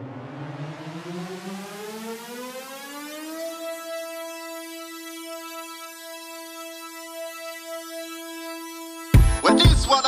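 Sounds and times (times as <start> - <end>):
synthesized siren-like tone: 0.0 - 10.0.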